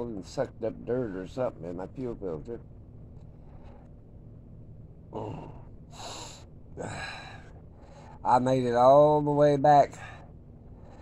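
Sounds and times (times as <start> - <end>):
low steady background hum: 0.0 - 11.0
man breathing: 3.3 - 4.0, 5.2 - 8.3, 9.9 - 11.0.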